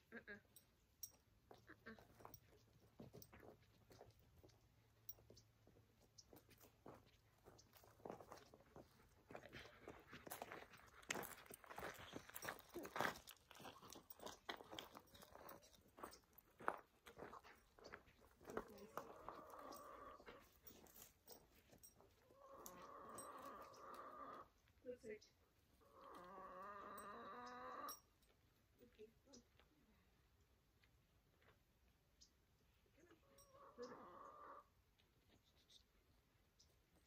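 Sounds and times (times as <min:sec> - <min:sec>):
footsteps crunching on stony path: 0:01.5 - 0:22.8.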